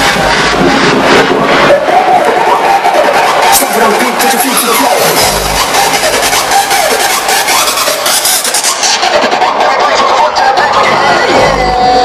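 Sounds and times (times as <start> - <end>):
crowd noise: 0.0 - 12.0
distorted dance music: 0.0 - 12.0.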